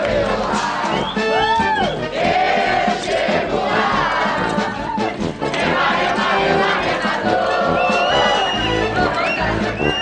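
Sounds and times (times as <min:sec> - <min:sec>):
carnival music: 0:00.0 - 0:10.0
crowd singing and shouting: 0:00.0 - 0:10.0.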